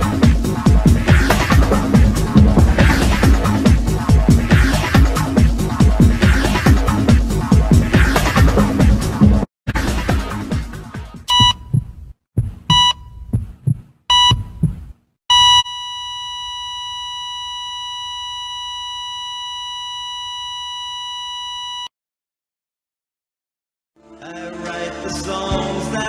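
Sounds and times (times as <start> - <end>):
music: 0.0 - 11.3, 24.0 - 26.0
low thumps: 1.0 - 6.3, 11.3 - 15.0
long electronic beep: 11.3 - 11.6, 12.7 - 13.0, 15.3 - 21.9
short electronic beeps: 11.3 - 11.8, 12.7 - 13.3, 14.1 - 14.6, 15.3 - 21.9.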